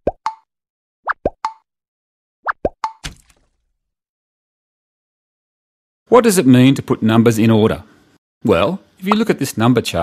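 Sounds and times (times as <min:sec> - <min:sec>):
cartoon bloops with pop: 0:00.0 - 0:01.7, 0:02.4 - 0:03.1
short noisy splat: 0:03.0 - 0:03.6.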